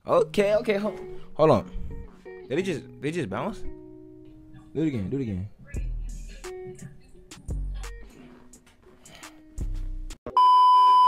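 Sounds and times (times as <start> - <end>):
hip-hop beat: 0.2 - 10.2.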